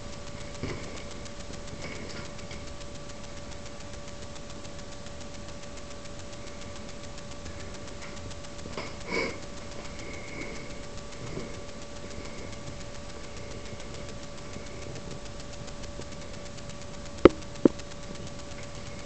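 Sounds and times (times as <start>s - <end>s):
camera microphone hiss and whine: 0.0s - 19.0s.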